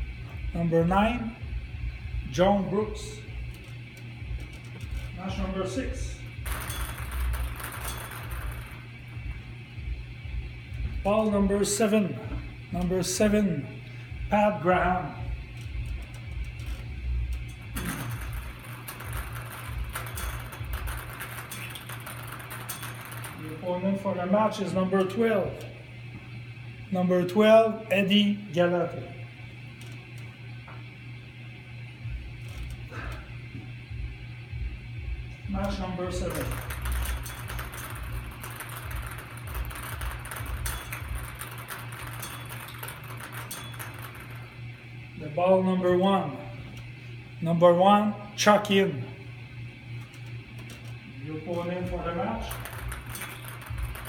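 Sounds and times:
balls rattling in bingo cage: 6.4 - 8.9, 17.4 - 23.6, 36.1 - 44.5, 51.6 - 54.0.

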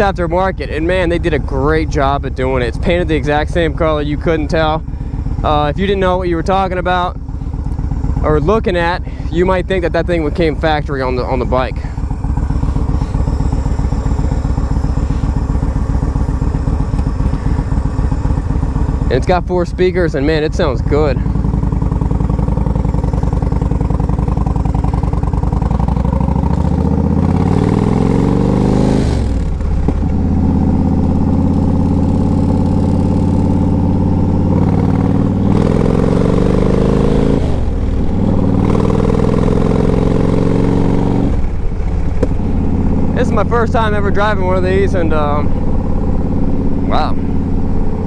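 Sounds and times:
motorcycle engine accelerating: 0.0 - 48.0.

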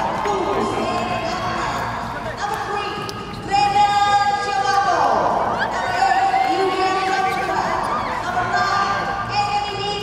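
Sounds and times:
murmur of people in a hall: 0.0 - 10.0.

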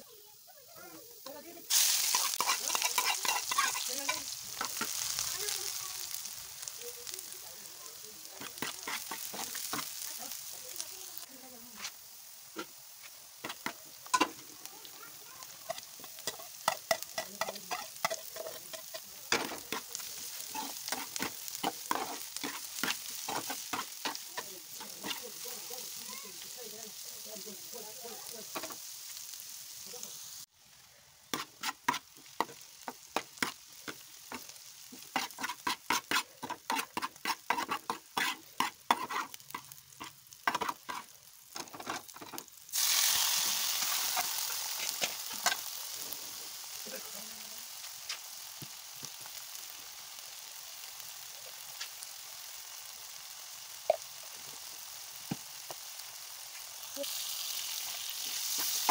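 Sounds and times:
loud sizzle: 0.0 - 58.9
vegetables frying in oil: 0.0 - 58.9
metal spoon scraping a pan: 1.2 - 5.0, 8.4 - 10.1, 12.6 - 14.5, 15.6 - 26.5, 31.3 - 42.9, 43.8 - 45.7.

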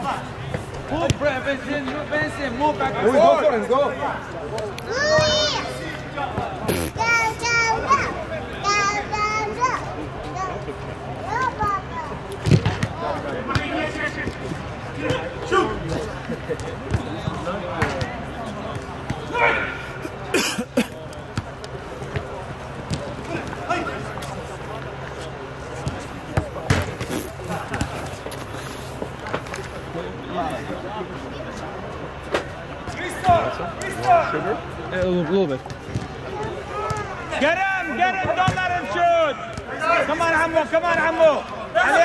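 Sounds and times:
players shouting: 16.9 - 20.3, 36.3 - 42.0.

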